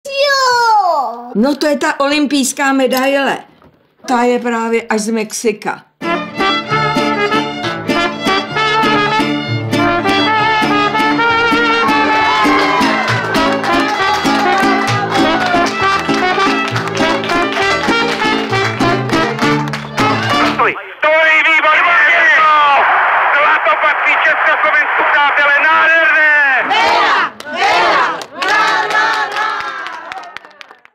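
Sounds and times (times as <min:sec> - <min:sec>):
strummed guitars: 0:06.0 - 0:20.6
trumpet melody: 0:06.0 - 0:20.7
crowd cheering and shouting: 0:11.2 - 0:18.3, 0:19.3 - 0:30.8.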